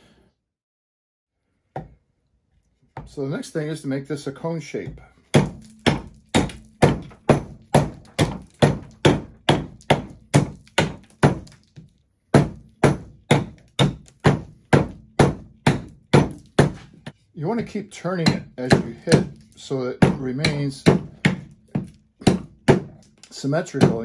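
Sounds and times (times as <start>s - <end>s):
hand axe chopping wood: 4.9s - 24.0s.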